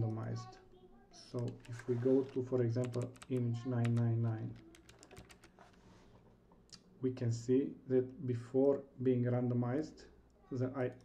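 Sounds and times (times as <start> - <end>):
faint keyboard keystrokes: 1.4 - 5.8.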